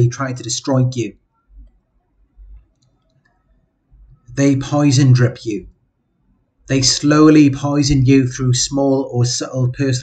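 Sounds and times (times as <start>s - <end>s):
man speaking: 0.0s - 1.2s, 4.3s - 5.8s, 6.7s - 10.0s.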